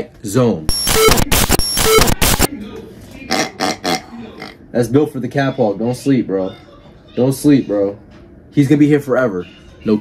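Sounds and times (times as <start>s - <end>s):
sound effects burst: 0.7s - 2.5s.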